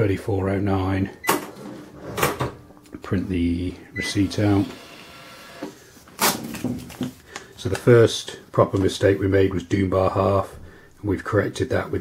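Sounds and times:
receipt printer noise: 4.0s - 5.8s
paper rustling: 6.0s - 8.0s.

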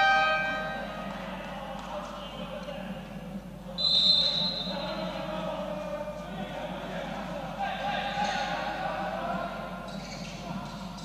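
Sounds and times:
loud sustained tone: 0.0s - 1.1s
indoor sports hall noise: 0.0s - 11.0s
referee whistle blast: 3.8s - 4.8s.

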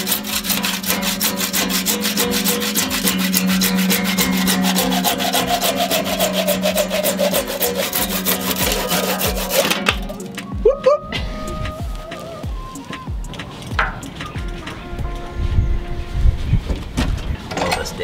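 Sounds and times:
hand saw cutting: 0.0s - 10.4s.

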